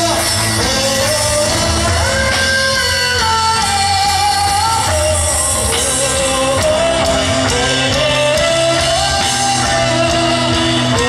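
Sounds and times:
band with bass and guitar: 0:00.0 - 0:11.0.

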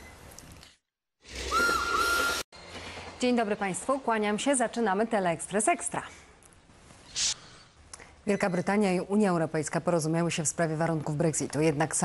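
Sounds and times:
hiss with whistle-like tone: 0:01.4 - 0:02.4.

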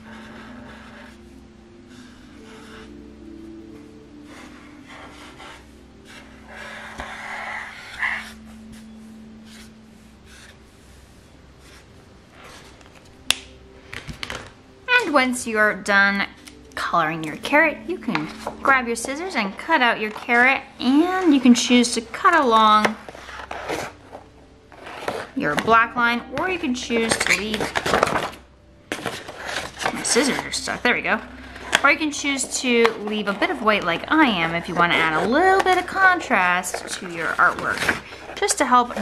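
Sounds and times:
marker stroking on paper: 0:01.9 - 0:03.0, 0:04.3 - 0:12.8
paper rustling: 0:04.3 - 0:13.2, 0:18.0 - 0:25.9, 0:26.6 - 0:39.0.

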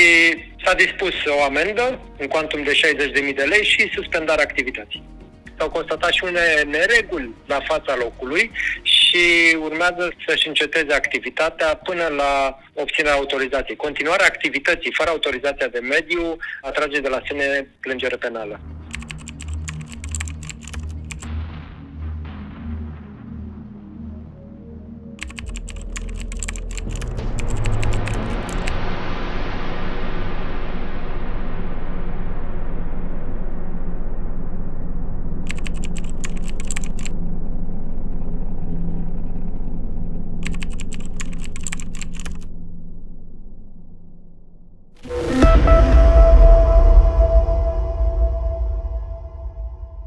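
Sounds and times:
low steady drone: 0:18.6 - 0:36.5, 0:37.1 - 0:41.3, 0:42.4 - 0:50.0
keyboard key clicks: 0:18.9 - 0:21.3, 0:25.2 - 0:28.7, 0:35.5 - 0:37.1, 0:40.4 - 0:42.4.

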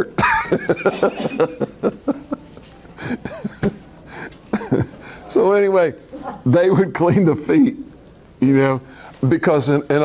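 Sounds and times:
man laughing under his breath: 0:00.2 - 0:03.7.

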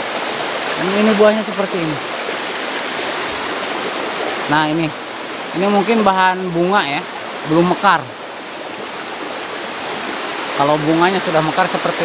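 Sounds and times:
river water rushing over rocks: 0:00.0 - 0:12.0.

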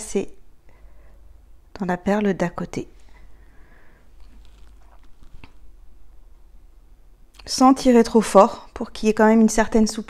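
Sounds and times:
thread drawn through beads: 0:04.0 - 0:05.8.

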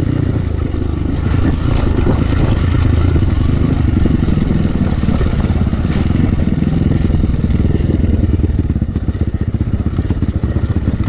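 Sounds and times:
dirt bike engine running: 0:00.0 - 0:11.0
rapid thudding over bumps: 0:00.0 - 0:11.0.

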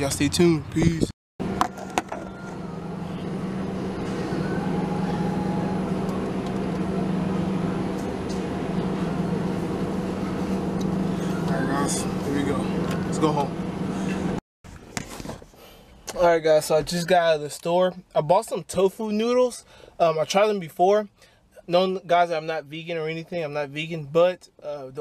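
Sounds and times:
refrigeration and ventilation hum: 0:00.0 - 0:25.0.

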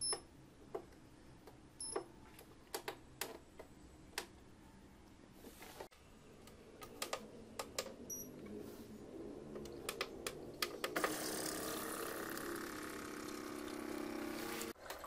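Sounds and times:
water purifier pump humming: 0:09.5 - 0:15.0.

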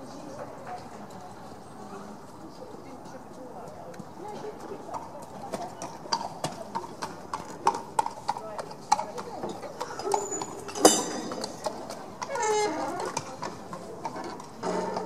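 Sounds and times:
horse hooves walking: 0:00.2 - 0:15.0.

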